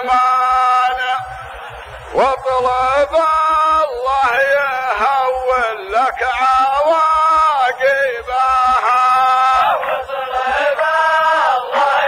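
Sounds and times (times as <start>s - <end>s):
men chanting poetry: 0.0s - 12.0s.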